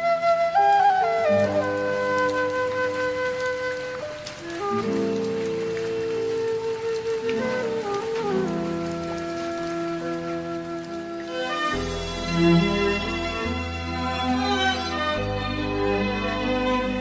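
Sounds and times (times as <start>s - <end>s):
bamboo flute melody: 0.0s - 17.0s.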